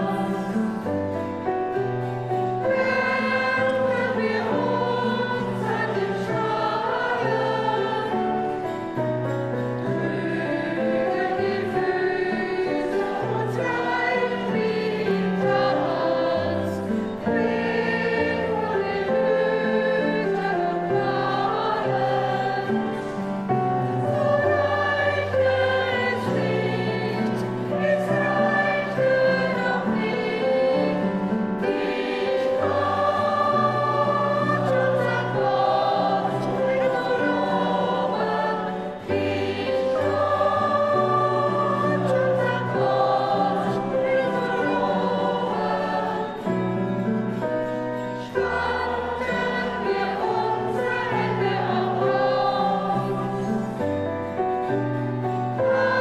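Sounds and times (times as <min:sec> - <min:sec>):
church choir singing: 0:00.0 - 0:56.0.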